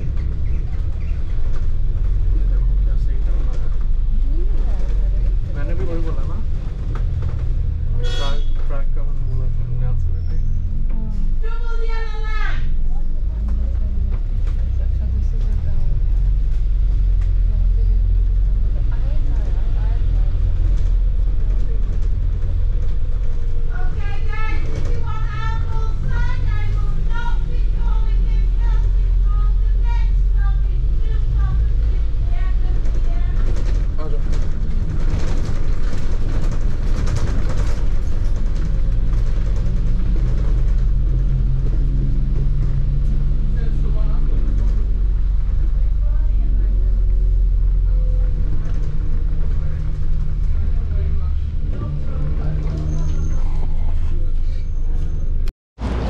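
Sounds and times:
bus engine hum: 0.0s - 56.0s
wind rumble on microphone: 12.4s - 54.5s.

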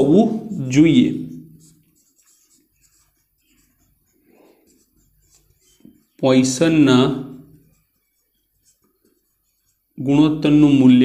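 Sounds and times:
marker pen scratching on whiteboard: 0.0s - 10.9s.

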